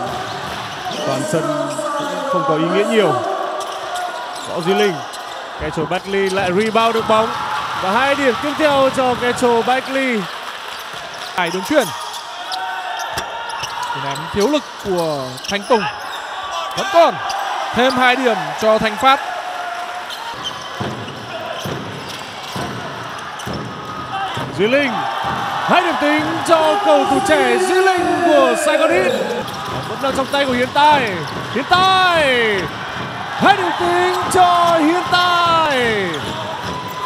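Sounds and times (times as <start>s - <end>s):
commentator speaking: 1.0s - 3.4s, 25.7s - 32.7s, 33.4s - 36.2s
arena crowd murmur: 24.9s - 29.7s.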